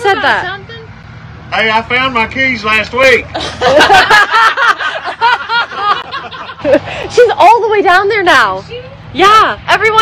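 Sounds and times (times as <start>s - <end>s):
person laughing: 3.3s - 7.1s.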